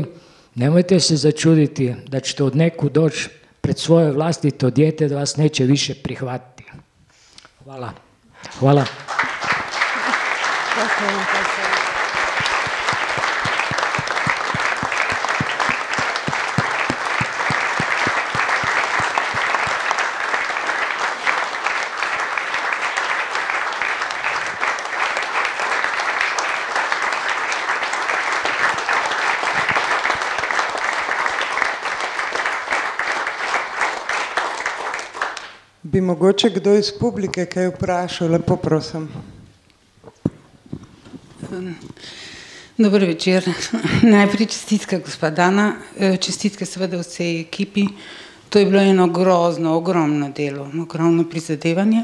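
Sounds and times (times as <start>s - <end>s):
audience applauding: 8.5s - 35.6s.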